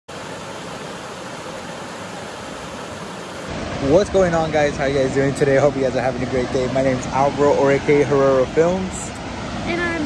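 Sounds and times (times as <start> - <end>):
creek rushing over rocks: 0.1 - 10.0
man talking: 3.8 - 9.2.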